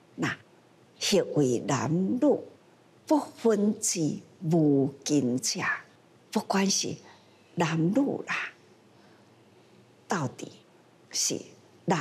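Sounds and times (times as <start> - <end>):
woman speaking: 0.2 - 0.4, 1.0 - 8.6, 10.1 - 12.0.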